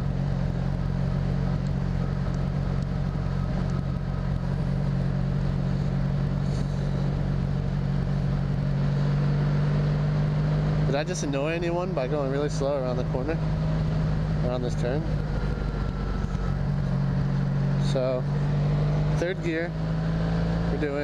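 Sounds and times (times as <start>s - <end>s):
motorcycle engine droning: 0.0s - 21.0s.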